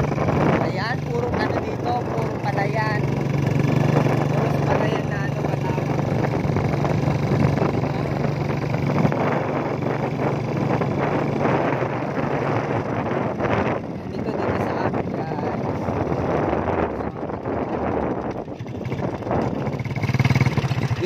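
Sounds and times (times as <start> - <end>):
vehicle engine running: 0.0 - 21.0
wind and road noise: 0.0 - 21.0.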